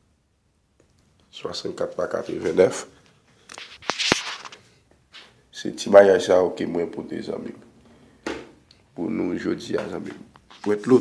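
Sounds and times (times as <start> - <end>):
brief rustle: 3.4 - 5.4.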